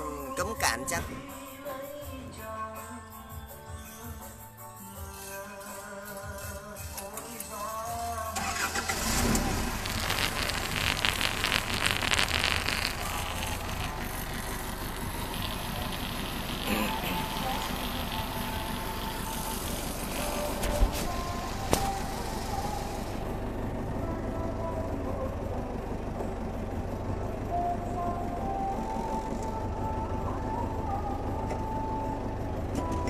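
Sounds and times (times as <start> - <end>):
forklift engine starting and idling: 5.1 - 33.0.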